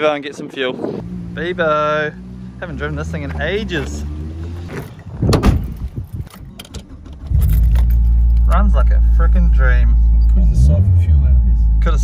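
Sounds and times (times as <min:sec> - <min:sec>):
car door opening and shutting: 0:03.7 - 0:08.6.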